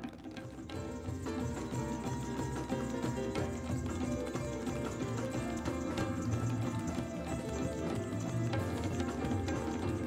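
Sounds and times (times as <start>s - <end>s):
tap and ankle bell footwork: 0.0s - 10.0s
band music: 0.7s - 10.0s.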